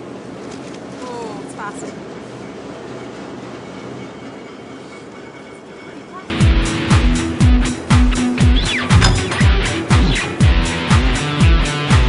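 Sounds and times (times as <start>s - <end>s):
heavy drum beat: 6.4s - 10.6s.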